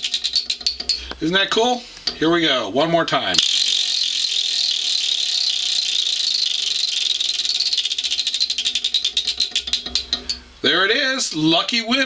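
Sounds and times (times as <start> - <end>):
spinning wheel pointer clicking: 0.0 - 1.0, 3.4 - 10.4.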